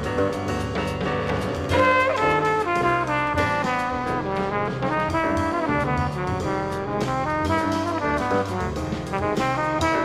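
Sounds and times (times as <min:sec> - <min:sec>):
jazz brass horns: 0:00.0 - 0:10.0
walking bass line: 0:00.0 - 0:10.0.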